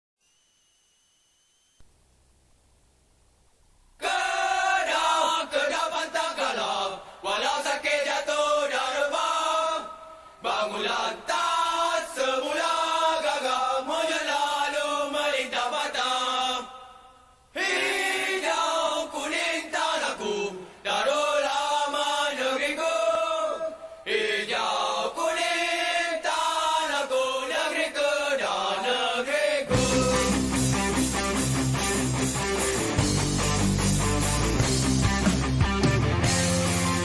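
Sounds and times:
group chanting unaccompanied: 4.0s - 30.6s
strummed guitar: 29.7s - 37.0s.

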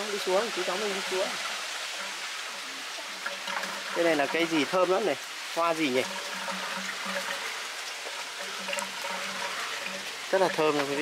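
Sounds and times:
water splashing into pond: 0.0s - 11.0s.

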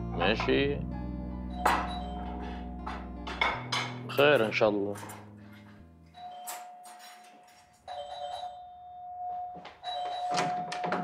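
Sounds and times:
doorbell chime: 1.5s - 3.4s, 6.1s - 11.0s.

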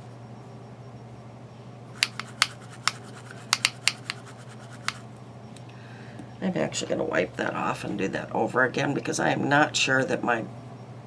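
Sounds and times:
brush scraping and tapping: 2.0s - 5.0s.

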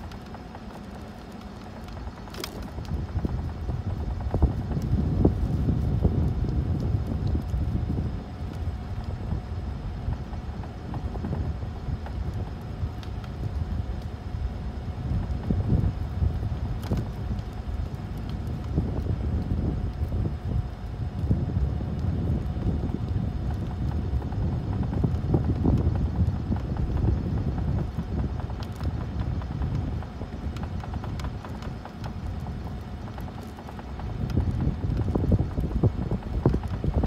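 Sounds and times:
wind buffeting microphone: 0.0s - 37.0s.

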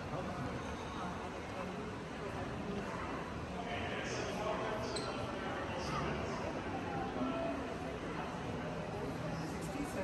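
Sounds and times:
steady room noise: 0.0s - 10.0s.

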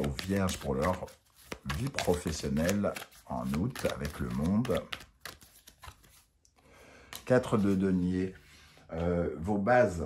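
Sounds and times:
cards being shuffled: 0.0s - 6.4s, 7.1s - 7.9s.

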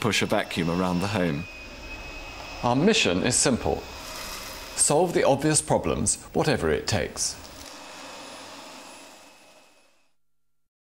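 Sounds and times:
vacuum cleaner motor running: 0.0s - 10.1s.

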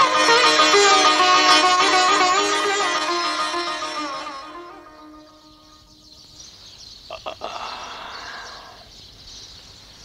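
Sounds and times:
frogs croaking: 5.3s - 10.0s.

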